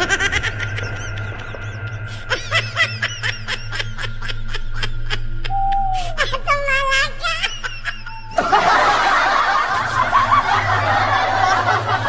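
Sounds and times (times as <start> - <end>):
crowd laughter: 0.0 - 5.6, 7.4 - 12.0
high wavering laughter: 0.0 - 12.0
low steady hum: 0.0 - 12.0
music: 0.0 - 12.0.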